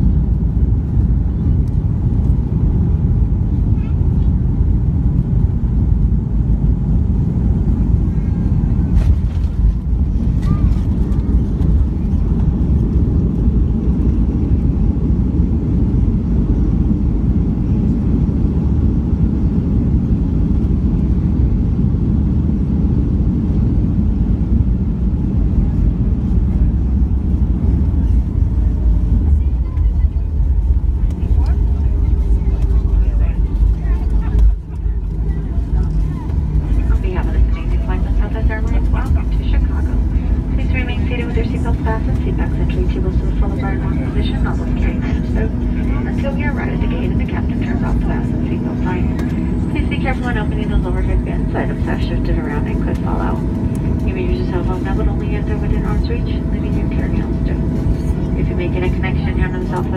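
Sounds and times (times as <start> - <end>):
jet cabin rumble: 0.0 - 59.9
steady engine tones: 0.0 - 59.9.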